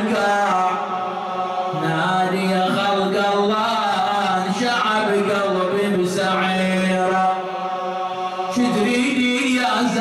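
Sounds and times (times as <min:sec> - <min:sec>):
man chanting into a microphone: 0:00.0 - 0:10.0.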